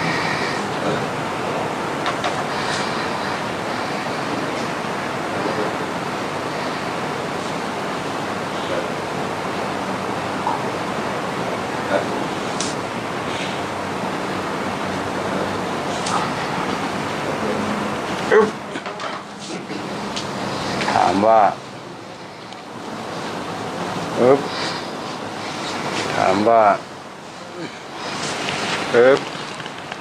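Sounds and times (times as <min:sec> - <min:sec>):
steady rushing noise: 0:00.0 - 0:30.0.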